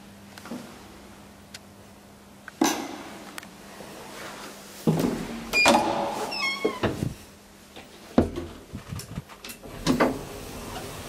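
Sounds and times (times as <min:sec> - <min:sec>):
elevator door squealing: 0:05.5 - 0:07.0
elevator doors rumbling and clattering: 0:08.2 - 0:11.0.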